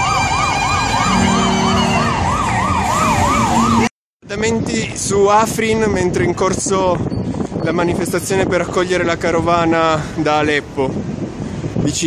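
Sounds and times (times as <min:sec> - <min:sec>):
siren yelping: 0:00.0 - 0:03.9
steady lower siren tone: 0:00.0 - 0:03.9.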